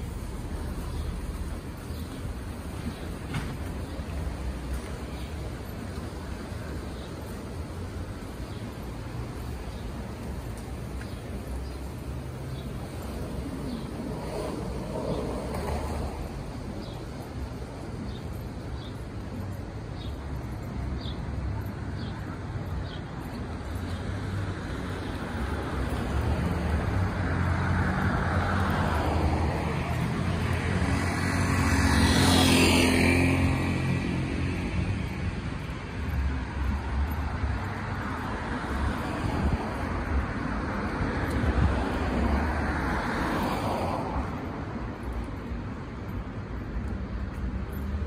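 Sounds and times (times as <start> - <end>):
cars passing: 0.0 - 48.0.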